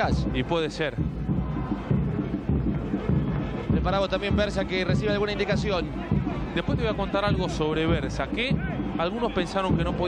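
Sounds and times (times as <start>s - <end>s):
football match crowd noise: 0.0s - 10.0s.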